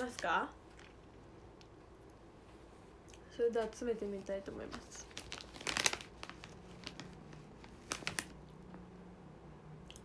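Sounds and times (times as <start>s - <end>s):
plastic packaging crinkling: 4.1s - 8.8s.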